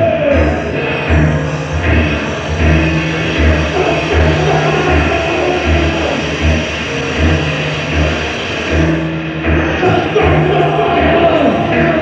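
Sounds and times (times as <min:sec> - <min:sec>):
industrial electronic music: 0:00.0 - 0:12.0.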